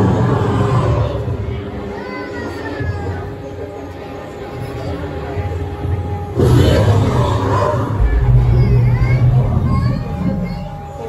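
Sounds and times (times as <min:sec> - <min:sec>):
steady low hum: 0:07.8 - 0:11.0
sudden burst of sound: 0:08.0 - 0:11.0.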